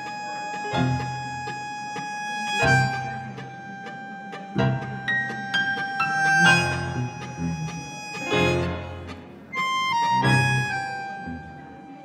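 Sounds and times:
sustained synth tones: 2.3s - 12.0s.

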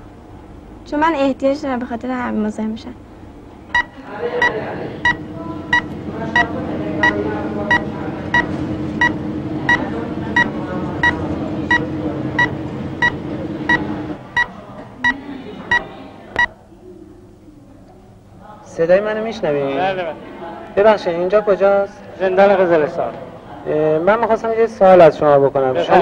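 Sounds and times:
steady low hum: 0.0s - 20.6s
short electronic beeps: 3.8s - 14.5s.

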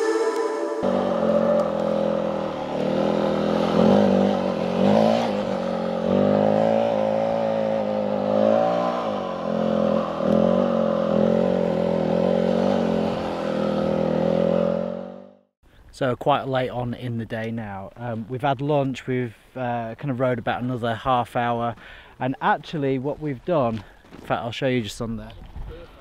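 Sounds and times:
dirt bike engine revving: 0.0s - 15.4s.

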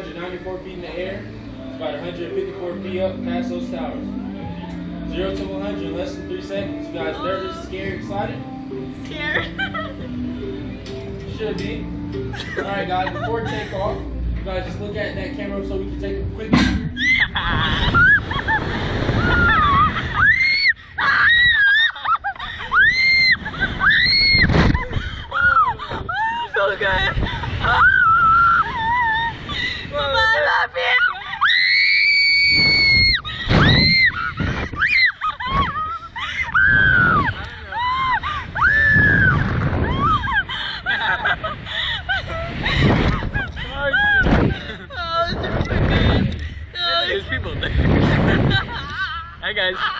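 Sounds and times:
riders screaming and laughing: 16.9s - 29.5s, 30.3s - 46.2s.

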